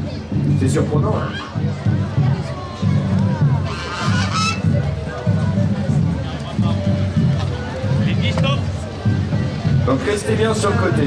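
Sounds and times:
geese honking: 3.6 - 4.7.

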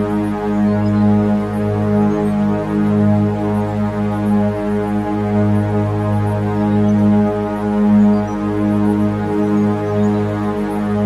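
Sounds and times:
deep sustained drone tone: 0.0 - 11.0.

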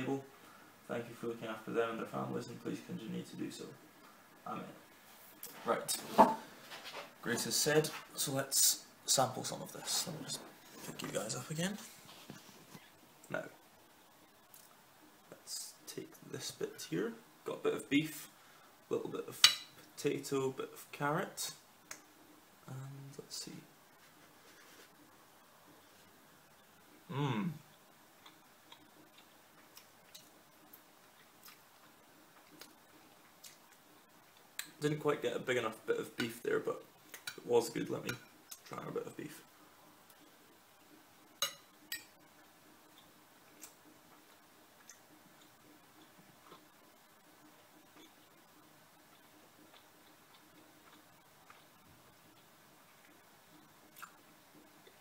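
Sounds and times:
person chewing food: 28.1 - 34.7, 42.8 - 55.0.

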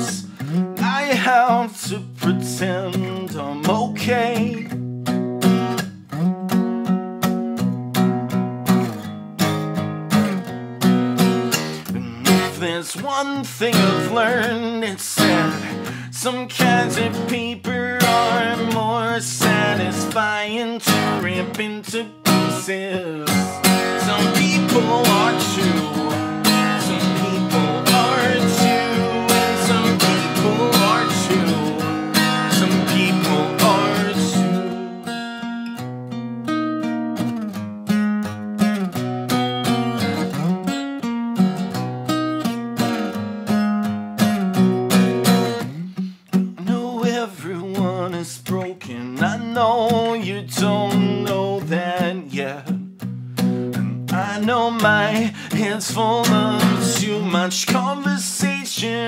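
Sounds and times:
acoustic guitar strumming: 0.0 - 59.0.

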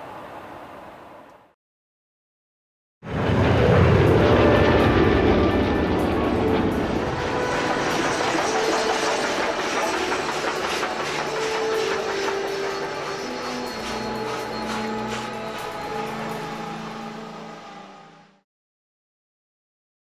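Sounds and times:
propeller plane engines passing: 3.1 - 17.8
steam locomotive running by: 3.1 - 18.4.

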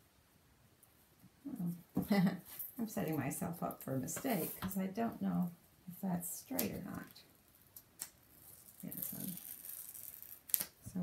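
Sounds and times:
plastic sheet rustling: 8.4 - 10.8.

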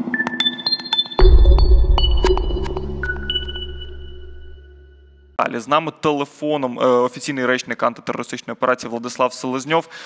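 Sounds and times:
high pinging electronic tones: 0.5 - 5.4
deep bass hit: 1.2 - 5.4.

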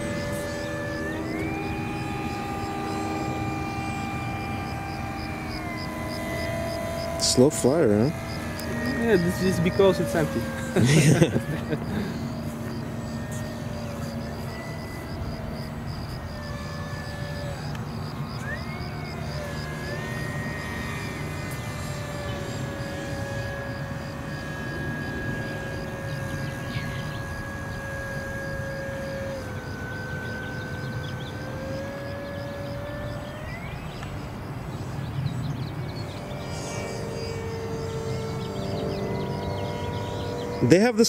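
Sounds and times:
model plane motor droning: 0.0 - 41.0.

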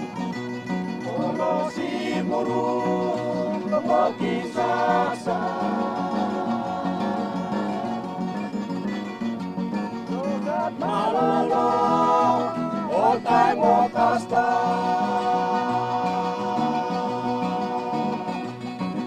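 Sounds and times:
strummed acoustic guitars: 0.0 - 19.0
group singing: 0.9 - 19.0.

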